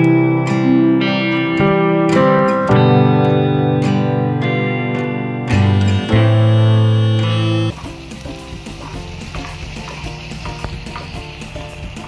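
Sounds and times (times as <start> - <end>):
soft background music: 0.0 - 12.0
seeds clicking against iron: 7.7 - 12.0
seeds sizzling and scraping: 7.7 - 12.0.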